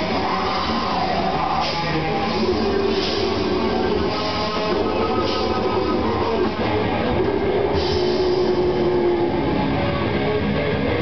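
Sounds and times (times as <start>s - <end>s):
grindcore band playing loud: 0.0s - 11.0s.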